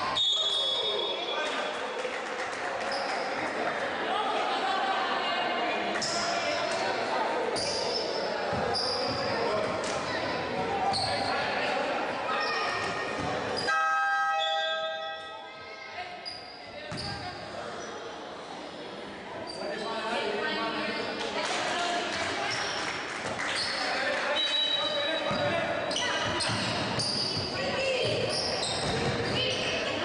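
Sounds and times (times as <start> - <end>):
voices echoing: 0.0 - 30.0
sneaker squeaks: 7.5 - 11.6, 12.3 - 15.4, 16.0 - 18.0, 19.4 - 20.1, 23.4 - 30.0
horn-like tone: 13.7 - 15.4.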